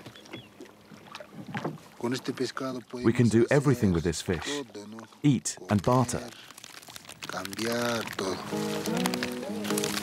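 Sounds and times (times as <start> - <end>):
water splashing: 0.0 - 10.0
fishing net being hauled: 5.8 - 10.0.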